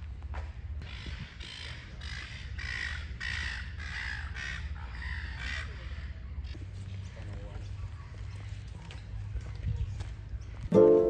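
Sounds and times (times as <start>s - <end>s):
crow cawing: 0.8s - 6.2s.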